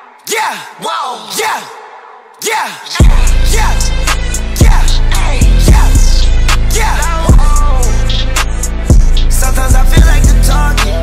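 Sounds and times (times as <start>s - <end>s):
shouted vocal calls with echo: 0.0s - 4.0s.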